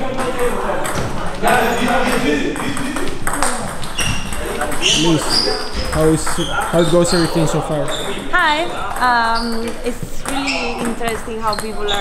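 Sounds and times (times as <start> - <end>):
table tennis balls clicking: 0.0 - 8.1, 8.7 - 12.0.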